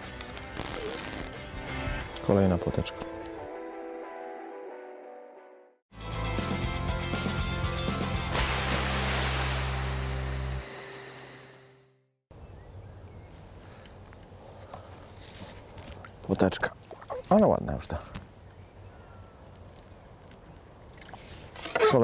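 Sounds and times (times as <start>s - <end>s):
steady outdoor background: 0.0s - 4.9s, 5.9s - 22.0s
whoosh: 8.2s - 11.8s.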